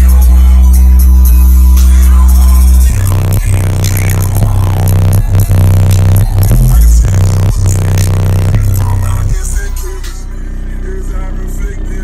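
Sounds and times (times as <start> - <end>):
bass-heavy electronic music: 0.0 - 12.0.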